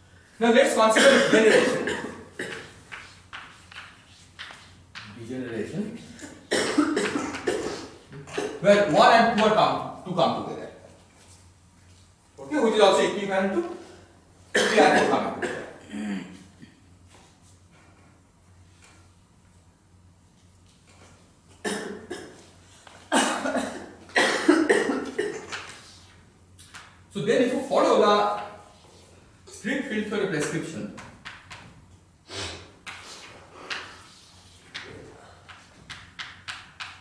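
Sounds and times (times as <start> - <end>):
man coughing: 0.9 - 2.8, 6.2 - 8.6, 14.5 - 16.8, 21.6 - 22.4, 23.1 - 25.6.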